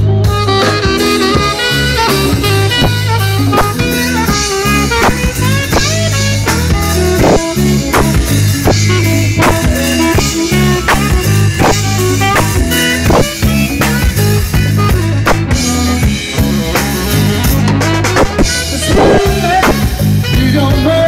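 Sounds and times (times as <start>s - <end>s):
bass line: 0.0s - 21.0s
congas: 0.0s - 21.0s
drum kit beat: 0.0s - 21.0s
keyboard: 0.0s - 21.0s
saxophone melody: 0.0s - 21.0s.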